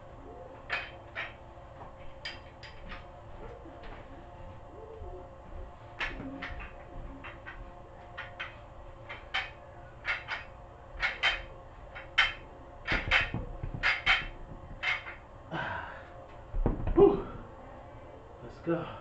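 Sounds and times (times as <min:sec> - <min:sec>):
faint steady hum: 0:00.0 - 0:19.0
man breathing forcefully: 0:15.5 - 0:16.2.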